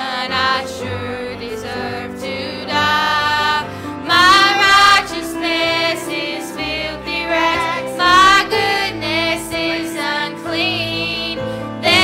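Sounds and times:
women and children singing: 0.0 - 12.0.

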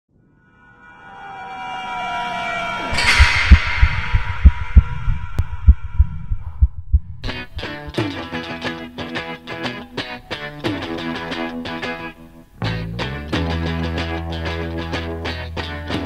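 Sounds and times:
tonal swell: 0.2 - 7.3
bright crash: 0.2 - 7.5
deep thumps: 3.0 - 7.6
plucked string music: 7.2 - 16.0.

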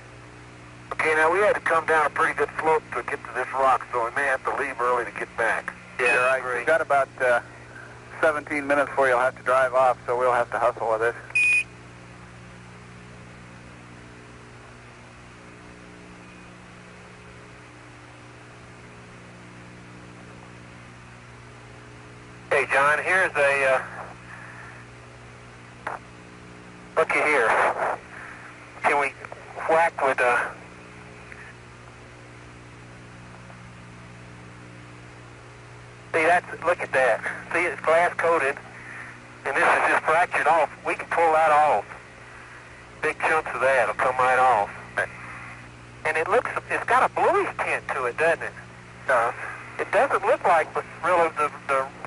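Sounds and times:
radio hiss and low hum: 0.0 - 52.0
short radio beep: 11.3 - 11.7.

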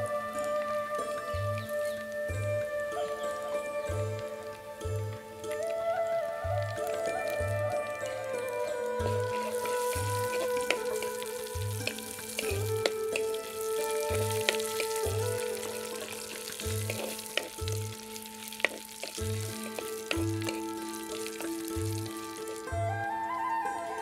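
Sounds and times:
background music with drum beat: 0.0 - 24.0
chilli flakes sizzling in oil: 0.0 - 24.0
spatula tapping pot: 15.8 - 22.0.

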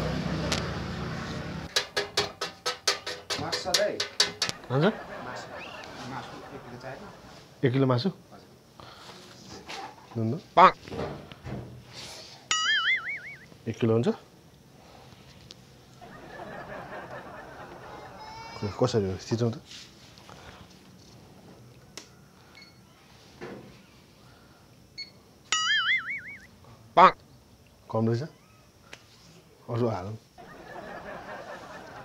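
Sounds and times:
cartoon boing twang: 12.5 - 13.4, 25.6 - 26.4.

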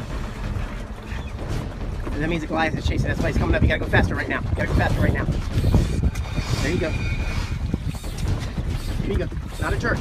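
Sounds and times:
wind rumble on microphone: 0.0 - 10.0.

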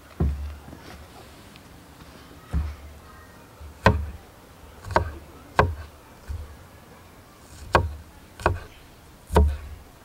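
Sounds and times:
knife chopping on wooden board: 3.8 - 4.2, 4.8 - 6.5, 7.5 - 8.7, 9.3 - 9.7.

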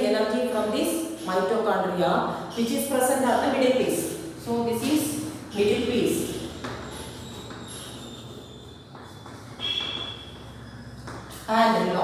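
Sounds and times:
chalk squeaking on blackboard: 6.6 - 11.5.

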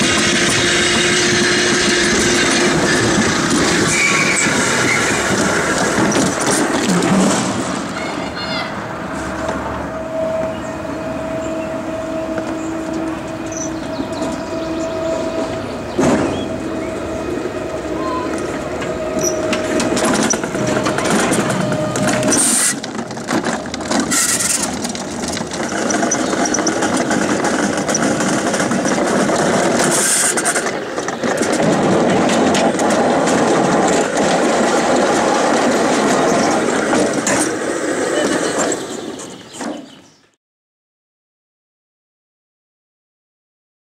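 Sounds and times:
sled wheels rumbling on rail: 0.0 - 40.4
steady whine: 8.8 - 39.2.

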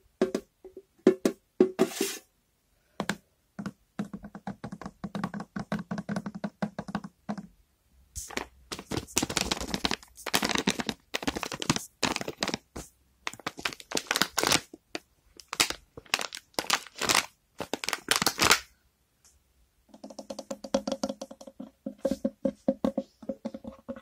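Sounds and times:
fingers tapping on objects: 3.0 - 7.5, 19.9 - 24.0.

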